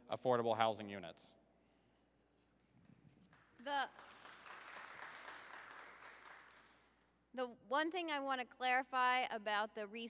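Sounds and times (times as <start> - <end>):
faint audience applause: 3.2 - 6.9.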